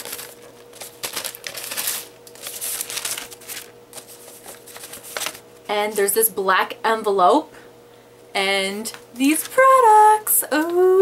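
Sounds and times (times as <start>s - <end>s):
tissue paper rustling: 0.0s - 6.0s.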